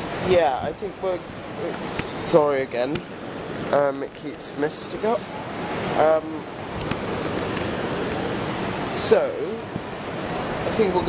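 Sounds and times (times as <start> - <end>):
waves breaking on shore: 0.0 - 11.0
wind: 0.0 - 11.0.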